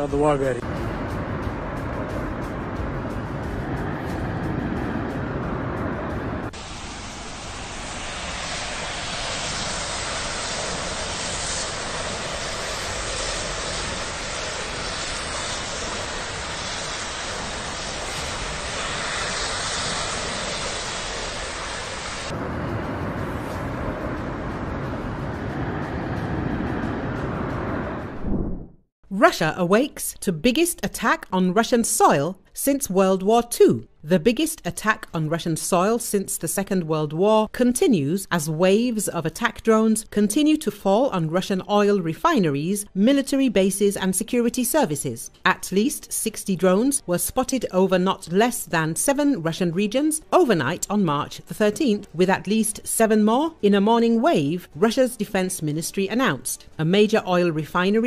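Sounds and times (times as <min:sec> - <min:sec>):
fire rushing noise: 0:00.0 - 0:28.8.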